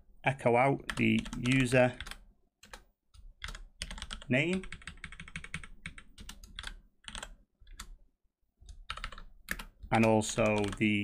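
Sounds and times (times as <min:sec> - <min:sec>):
keyboard typing: 0:00.8 - 0:08.0, 0:08.6 - 0:11.0.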